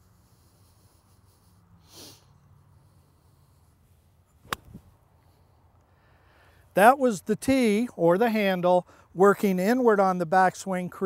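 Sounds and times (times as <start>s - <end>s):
soft breath-like rush: 0.0s - 4.2s, 5.1s - 6.7s.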